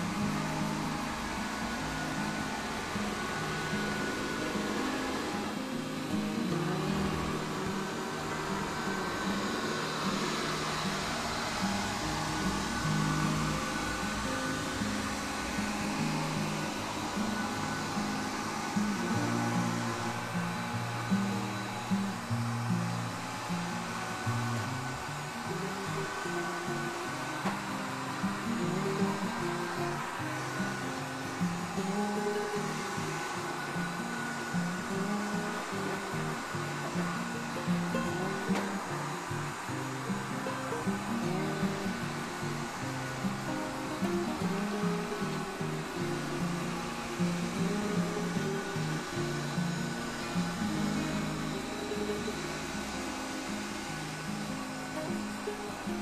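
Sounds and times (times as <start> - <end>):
plucked melody music: 0.0 - 56.0
robot vacuum cleaner whirring: 0.0 - 56.0.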